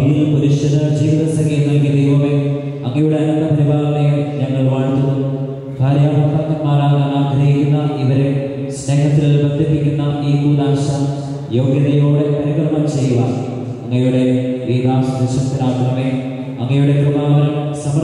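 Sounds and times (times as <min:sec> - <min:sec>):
priest chanting a prayer: 0:00.0 - 0:18.0.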